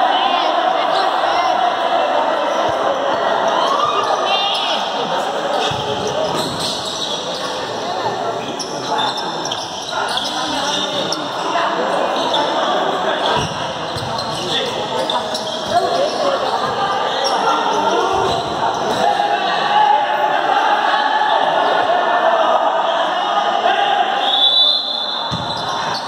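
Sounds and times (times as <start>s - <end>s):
players shouting in echoing hall: 0.0s - 26.0s
ball kicked and bouncing: 25.3s - 25.5s.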